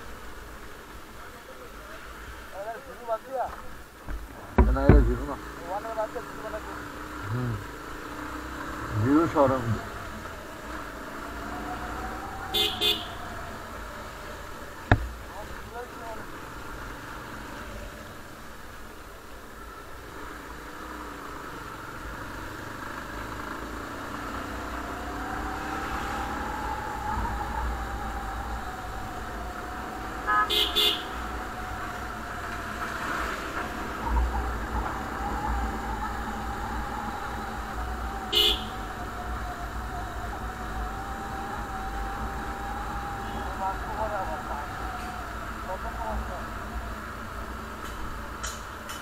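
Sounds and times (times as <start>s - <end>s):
motorcycle horn beeps: 12.6s - 13.2s, 30.3s - 31.1s, 38.3s - 38.8s.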